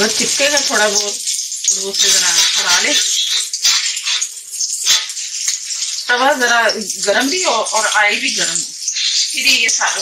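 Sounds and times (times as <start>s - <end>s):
kebabs sizzling in oil: 0.0s - 10.0s.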